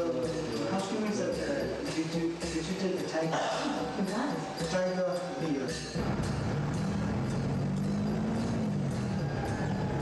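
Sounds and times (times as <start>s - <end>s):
vehicle engine running: 6.0s - 10.0s.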